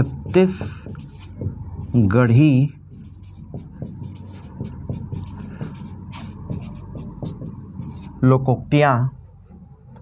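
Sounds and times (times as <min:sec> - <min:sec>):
pen scratching on whiteboard screen: 0:00.0 - 0:02.2, 0:02.9 - 0:08.2.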